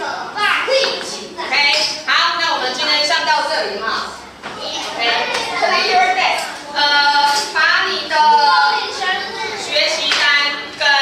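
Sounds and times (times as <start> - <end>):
young children chattering: 0.0 - 11.0.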